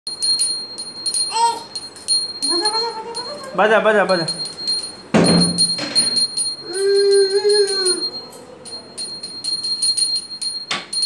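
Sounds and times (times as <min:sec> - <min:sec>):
small bell ringing: 0:00.1 - 0:11.0.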